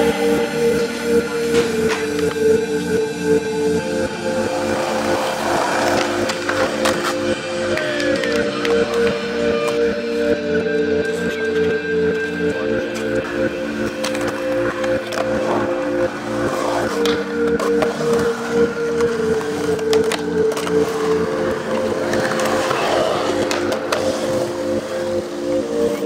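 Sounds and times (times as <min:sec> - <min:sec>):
music with held chords: 0:00.0 - 0:26.0
skateboard wheels rolling on concrete: 0:00.0 - 0:26.0
skateboard trucks grinding on metal: 0:04.4 - 0:07.3
skateboard clacks: 0:04.8 - 0:09.9, 0:12.6 - 0:24.8.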